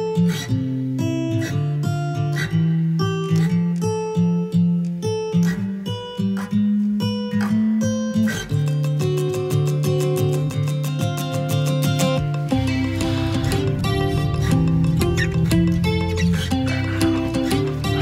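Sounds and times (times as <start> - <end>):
acoustic guitar music: 0.0 - 18.0.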